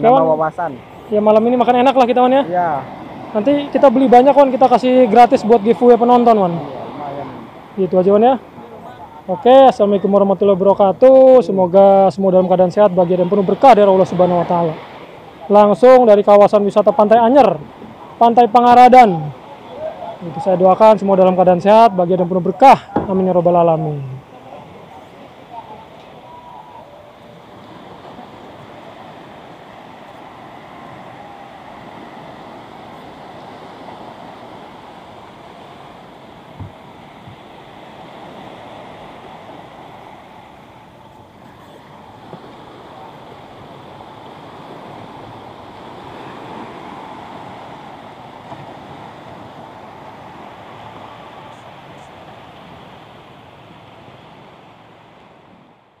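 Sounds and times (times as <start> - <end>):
small waves washing onto sand: 0.0 - 56.0.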